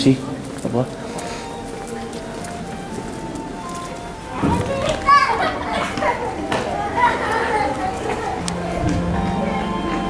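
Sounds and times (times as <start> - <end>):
children calling and squealing: 0.4 - 10.0.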